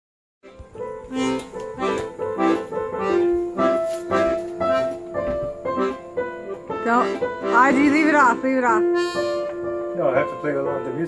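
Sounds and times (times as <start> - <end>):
piano accordion playing a tune: 0.4 - 11.0.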